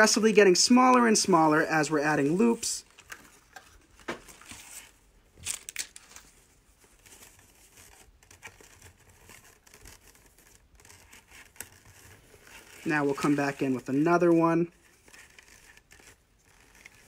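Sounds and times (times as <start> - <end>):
ribbon rustling and crinkling: 0.0 - 17.0.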